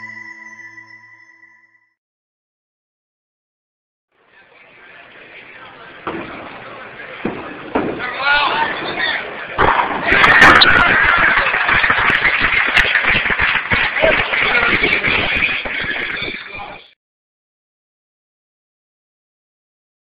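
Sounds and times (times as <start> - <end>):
bowling pins crashing: 7.2 - 12.2
crowd cheering and shouting: 8.0 - 16.9.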